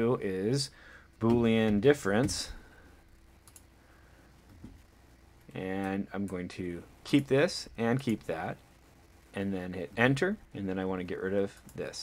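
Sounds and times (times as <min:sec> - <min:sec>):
computer mouse click: 0:03.4 - 0:03.7.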